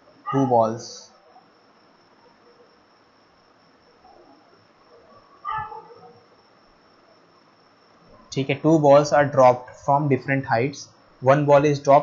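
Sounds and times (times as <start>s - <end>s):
faint high-pitched whine: 0.0s - 12.0s.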